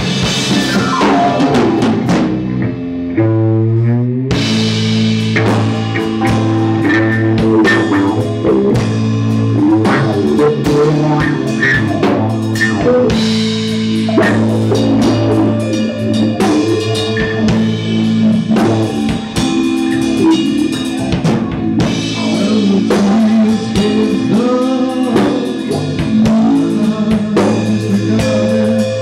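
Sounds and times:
drum kit steady beat: 0:00.0 - 0:02.9, 0:04.3 - 0:29.0
live rock band playing: 0:00.0 - 0:29.0
upright bass: 0:00.0 - 0:29.0.

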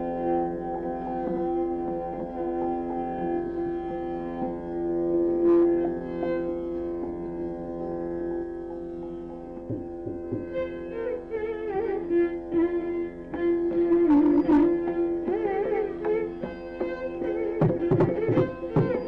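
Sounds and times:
violin duet sustained notes: 0:00.0 - 0:19.0.

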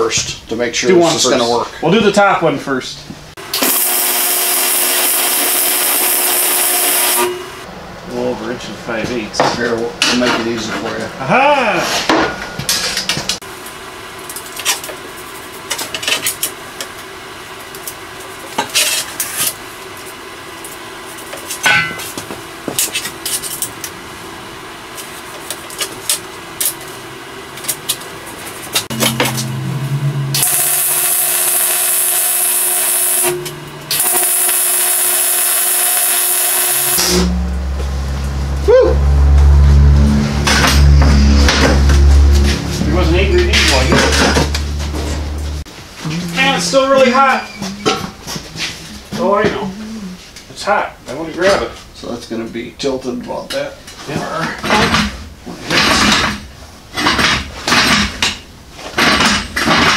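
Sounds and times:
welding arc sizzling: 0:03.4 - 0:07.6, 0:28.6 - 0:38.4
music with low bass: 0:37.1 - 0:45.6.

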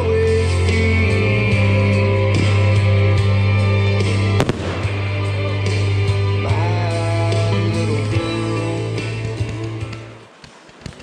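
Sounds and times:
loud song playing: 0:00.0 - 0:10.2
faint firework pops: 0:04.4 - 0:05.0
firework bang: 0:04.4 - 0:05.3.

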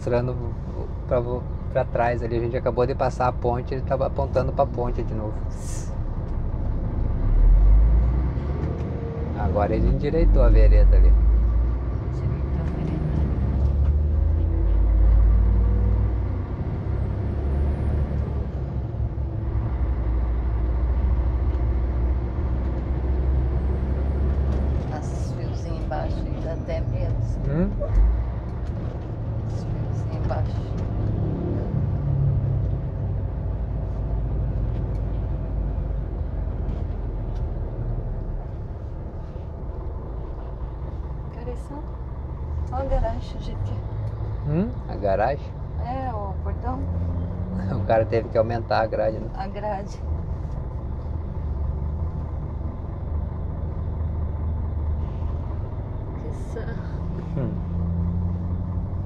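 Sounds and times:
truck engine rumbling: 0:00.0 - 0:59.0.

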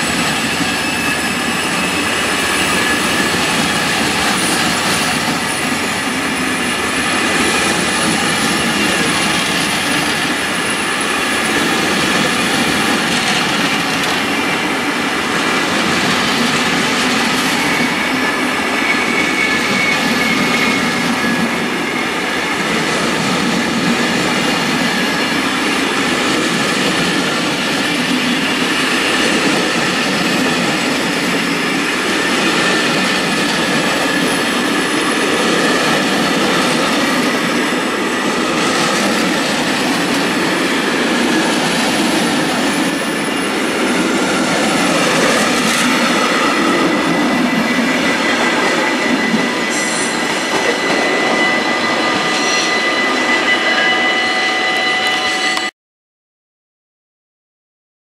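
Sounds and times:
train wheels on rails: 0:00.0 - 0:55.7
high-pitched wheel squealing: 0:00.3 - 0:12.9, 0:16.8 - 0:22.8, 0:27.1 - 0:55.7.

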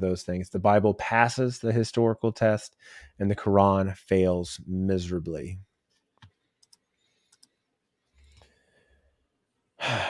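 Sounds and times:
computer mouse clicks: 0:06.0 - 0:07.6.

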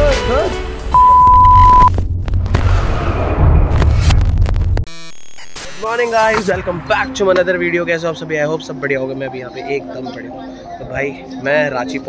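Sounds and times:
loud electronic beep: 0:01.0 - 0:01.9, 0:04.9 - 0:06.0
low rumble: 0:01.0 - 0:04.9.

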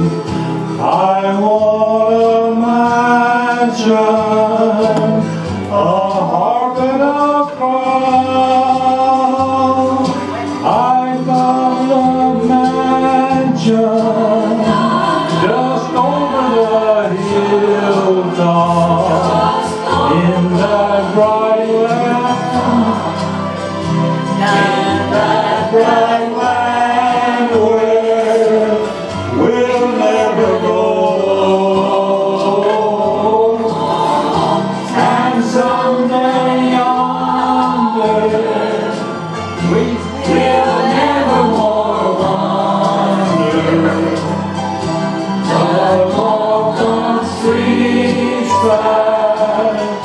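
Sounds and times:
two men singing gospel: 0:00.0 - 0:50.0.

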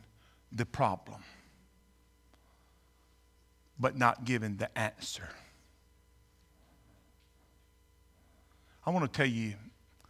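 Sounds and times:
faint steady hum: 0:00.0 - 0:10.0
man speaking: 0:00.5 - 0:01.5, 0:03.8 - 0:05.6, 0:08.8 - 0:09.8.

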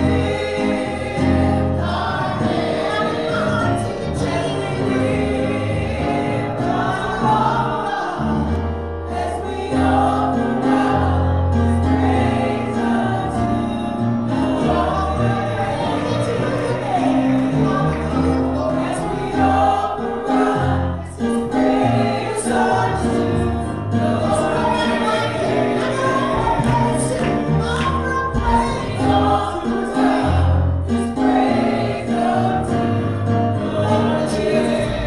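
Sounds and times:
instrumental accompaniment bass notes: 0:00.0 - 0:35.0
women singing gospel: 0:00.0 - 0:35.0.

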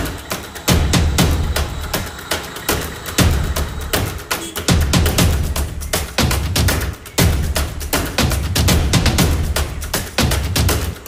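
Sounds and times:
sharp drum hits: 0:00.0 - 0:10.4.

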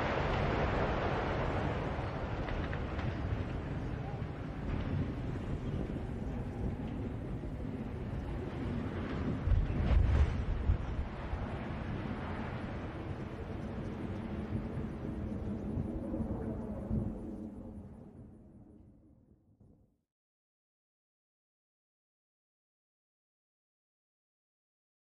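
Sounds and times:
low rumble of demolition: 0:00.0 - 0:17.7
wind on microphone: 0:00.0 - 0:18.8.

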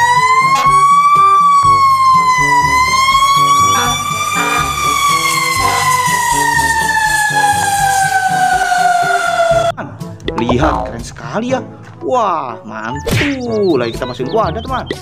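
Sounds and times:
fire truck siren wailing: 0:00.0 - 0:09.8.

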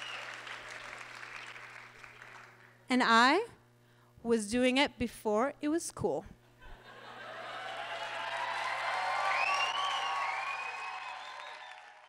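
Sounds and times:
audience applauding and cheering: 0:00.0 - 0:02.8, 0:07.3 - 0:12.0.

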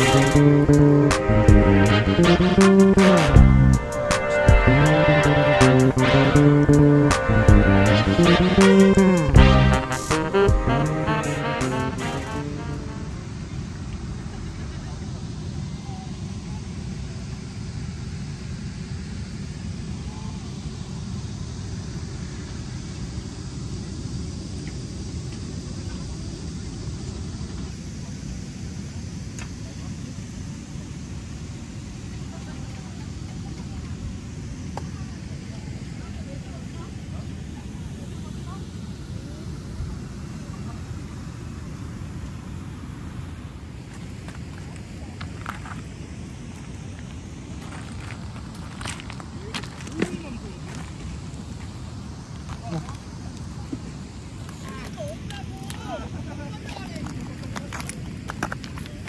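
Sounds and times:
low outdoor rumble: 0:00.0 - 0:59.0
faint distant voices: 0:07.1 - 0:59.0.

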